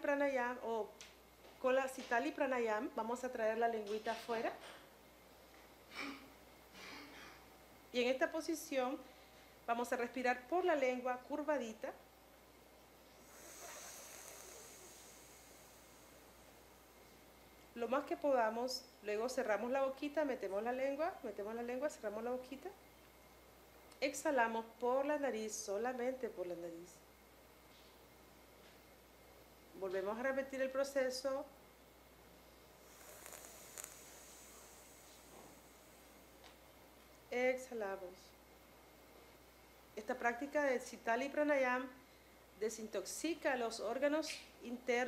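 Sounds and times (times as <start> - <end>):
hissing in-breath: 13.1 - 16.7, 32.8 - 36.3.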